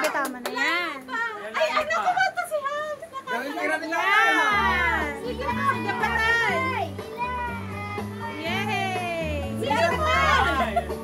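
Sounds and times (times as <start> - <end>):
background music with bass: 4.4 - 11.0.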